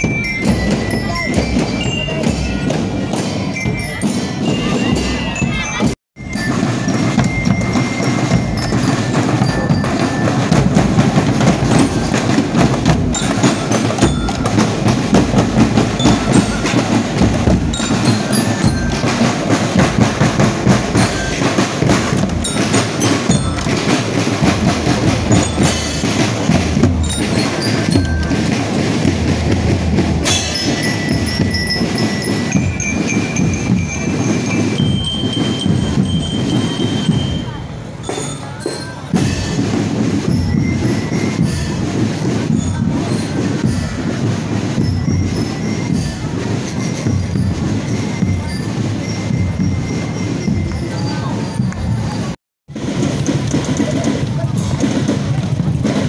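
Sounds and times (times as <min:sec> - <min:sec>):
bass drums: 0:00.0 - 0:37.4
bell lyres: 0:00.0 - 0:56.0
crowd chatter: 0:00.0 - 0:56.0
snare drums: 0:00.0 - 0:56.0.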